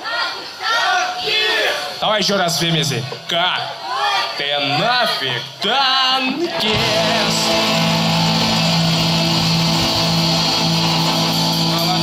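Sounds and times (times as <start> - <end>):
rock band guitars sustained chord: 6.6 - 12.0.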